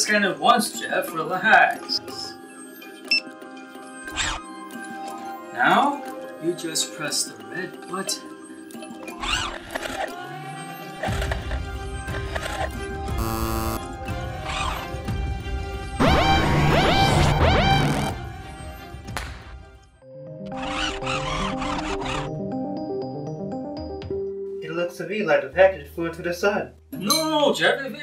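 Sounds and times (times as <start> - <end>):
film score music: 0.0 - 28.0.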